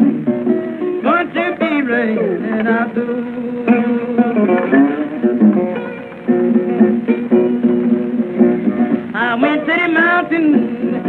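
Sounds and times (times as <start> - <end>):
acoustic slide guitar: 0.0 - 11.0.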